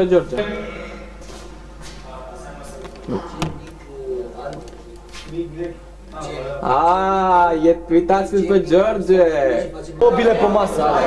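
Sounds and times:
low voices talking: 0:00.0 - 0:08.7
low electrical hum: 0:00.0 - 0:11.0.

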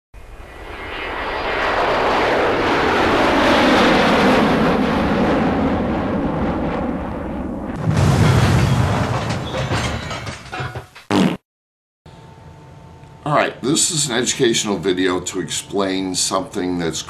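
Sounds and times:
cartoon rocket engine rushing: 0:00.2 - 0:07.8.

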